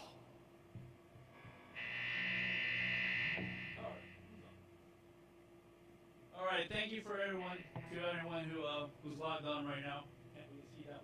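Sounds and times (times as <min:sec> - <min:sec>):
guitar amplifier low hum: 0:00.0 - 0:11.0
guitar amplifier high buzz: 0:00.8 - 0:04.8, 0:07.4 - 0:10.6.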